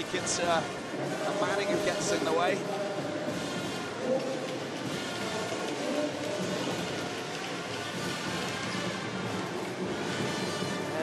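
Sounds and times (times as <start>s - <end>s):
large crowd noise: 0.0s - 11.0s.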